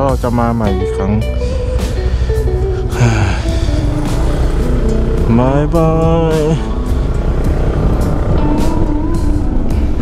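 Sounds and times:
background music: 0.0s - 10.0s
road rumble: 0.0s - 10.0s
scooter engine: 1.4s - 10.0s.

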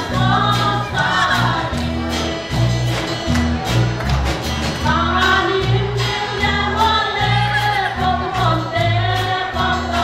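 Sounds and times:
women singing together: 0.0s - 2.0s, 4.8s - 10.0s
drums: 0.0s - 10.0s
low bass notes: 0.0s - 10.0s.

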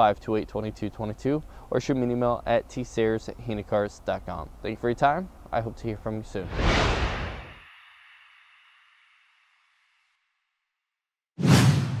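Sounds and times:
loud whoosh with deep low end: 6.4s - 7.6s
whoosh: 6.4s - 9.2s.

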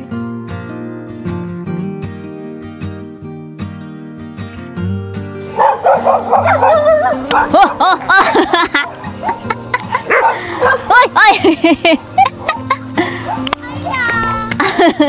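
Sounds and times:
soft guitar music: 0.0s - 15.0s.

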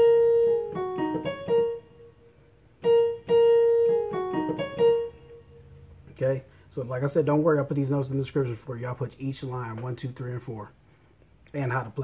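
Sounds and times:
keyboard piano melody: 0.0s - 6.1s.

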